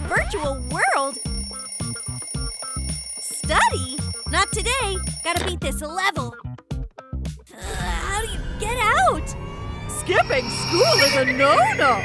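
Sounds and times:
alarm clock ringing: 0.1s - 5.4s
background music with steady beat: 0.6s - 7.5s.

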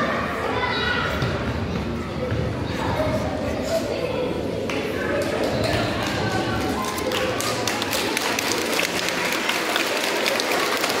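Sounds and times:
audience applauding: 5.7s - 11.0s.

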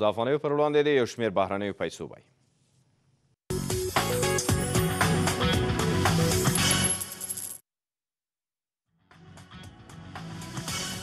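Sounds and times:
coin clink sound effects: 6.3s - 7.6s.

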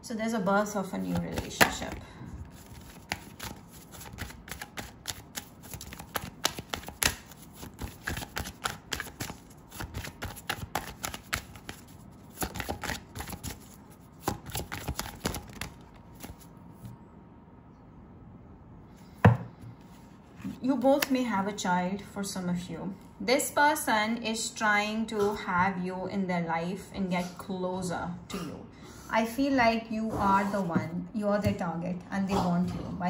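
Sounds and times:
woman speaking: 0.0s - 2.1s, 20.6s - 33.0s
cards being shuffled: 1.0s - 16.5s
tap on tabletop: 19.2s - 19.5s.

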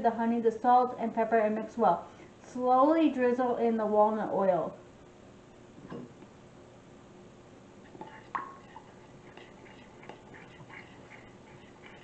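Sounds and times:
spoon scraping glass bowl: 7.9s - 12.0s.

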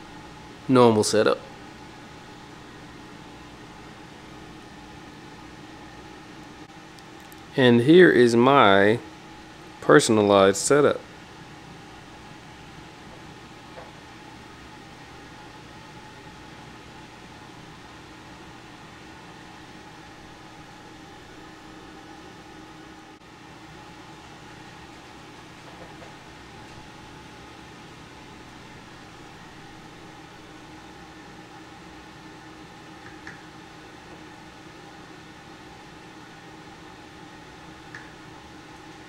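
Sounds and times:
room hiss: 0.0s - 39.0s
ventilation hum: 0.0s - 39.0s.

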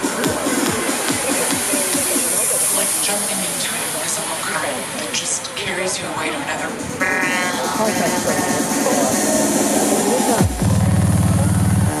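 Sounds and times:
crowd voices: 0.0s - 12.0s
electronic dance music: 0.0s - 12.0s
high hissing noise sweep: 0.0s - 12.0s.

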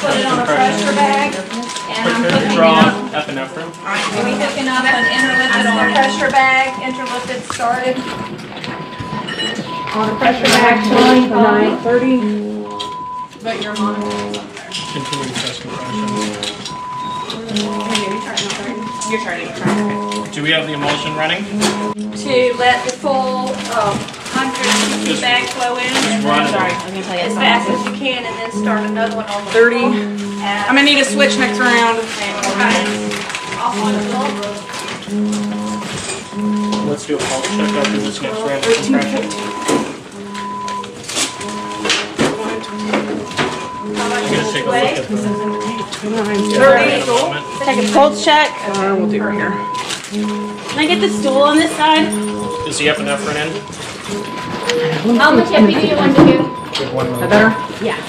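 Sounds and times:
low voices: 0.0s - 58.0s
patient monitor alarm tone: 0.0s - 58.0s
room background noise: 0.0s - 58.0s
short higher beeps: 0.0s - 58.0s.

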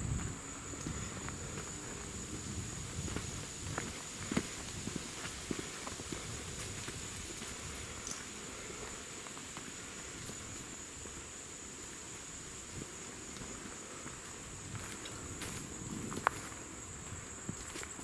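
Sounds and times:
footsteps on dry leaves and twigs: 0.1s - 18.0s.

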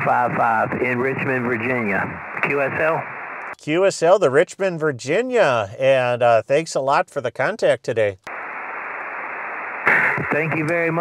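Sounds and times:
person speaking over radio: 0.0s - 3.1s, 9.9s - 11.0s
radio band noise hiss: 0.0s - 3.6s, 8.2s - 11.0s.

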